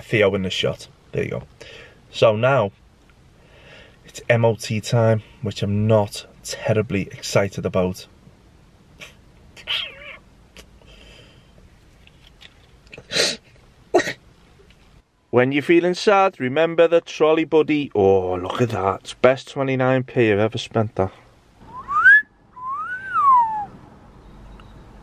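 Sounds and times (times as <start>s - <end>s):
dog whining: 9.6s - 10.2s
man whistling two notes: 21.6s - 23.8s.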